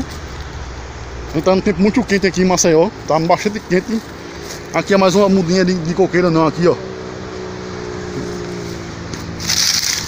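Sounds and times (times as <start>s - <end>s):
dry leaves and twigs crackling: 0.0s - 5.6s, 8.1s - 10.0s.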